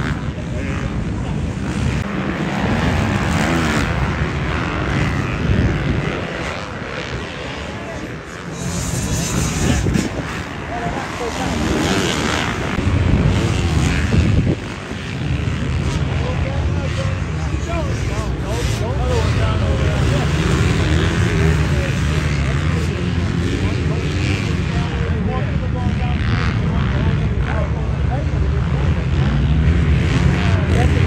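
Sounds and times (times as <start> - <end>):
dirt bike engines racing: 0.0 - 31.0.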